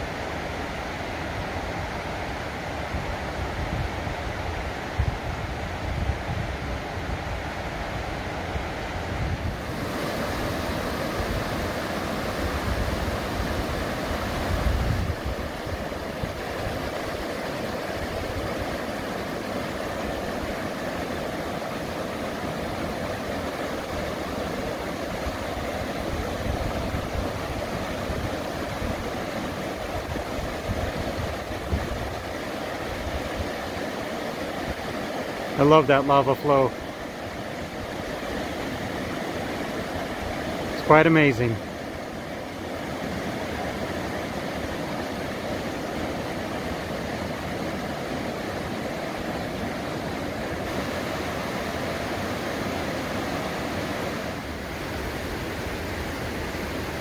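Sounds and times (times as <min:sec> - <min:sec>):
wind buffeting microphone: 0:02.8 - 0:18.8, 0:25.1 - 0:33.6
river rapids rushing: 0:06.5 - 0:57.0.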